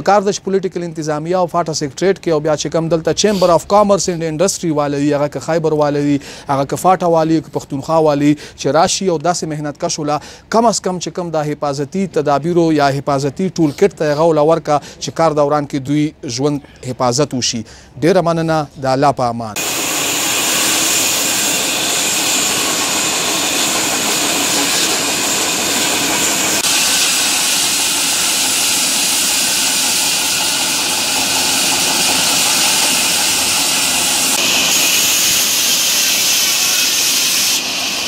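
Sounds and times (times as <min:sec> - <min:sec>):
band saw cutting wood: 0:19.6 - 0:38.0.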